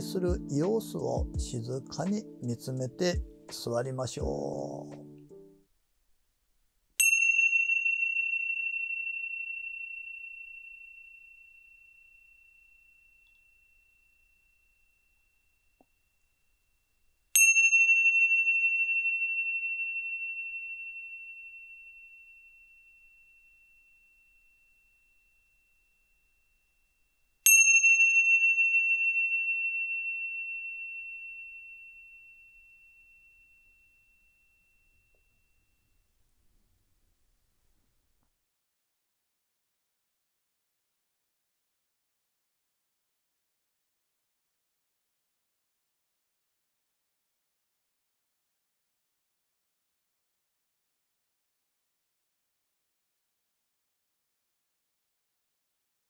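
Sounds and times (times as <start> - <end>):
small metal bell ringing: 7.0 - 16.5, 17.3 - 36.0.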